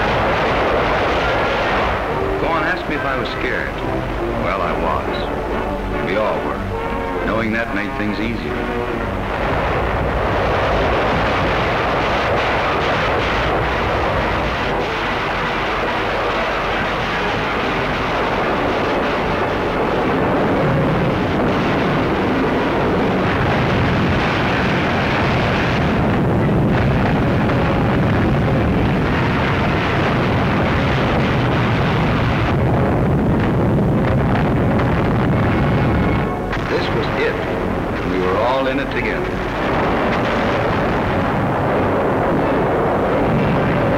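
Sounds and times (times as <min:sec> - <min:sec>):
gunfire: 0:00.0 - 0:05.3, 0:07.3 - 0:43.9
explosions: 0:00.0 - 0:43.9
soundtrack music: 0:01.4 - 0:12.0.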